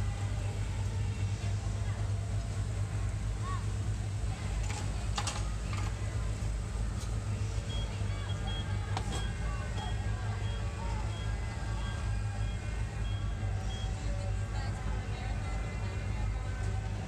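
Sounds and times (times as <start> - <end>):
faint background voices: 0.0 - 17.0
go-kart engines humming: 0.0 - 17.0.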